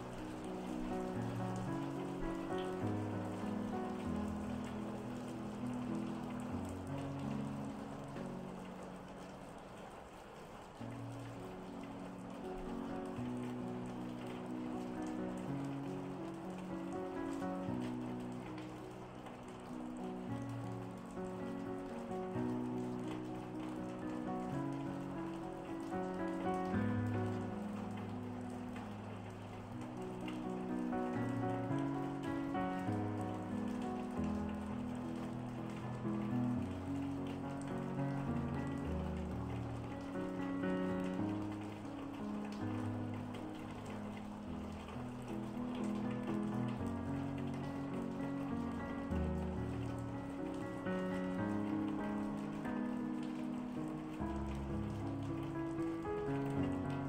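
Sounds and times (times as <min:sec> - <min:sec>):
calm piano music: 0:00.0 - 0:57.0
rain patter: 0:00.0 - 0:57.0.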